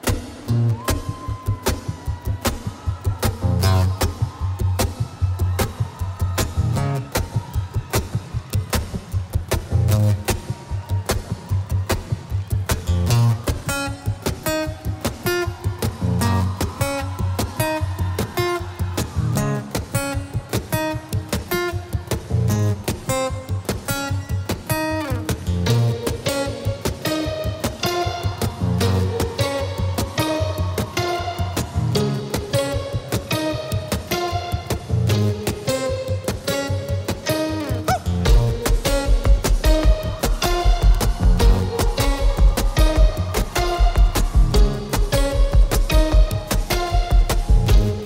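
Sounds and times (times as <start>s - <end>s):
picked guitar melody: 3.2s - 48.0s
acoustic guitar strumming: 12.9s - 48.0s.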